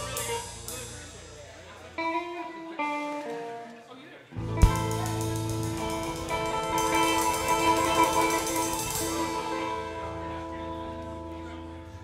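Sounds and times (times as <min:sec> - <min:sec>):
guitar bass and drum band: 0:00.0 - 0:03.7, 0:04.3 - 0:12.0
electric guitar notes ringing: 0:04.4 - 0:12.0.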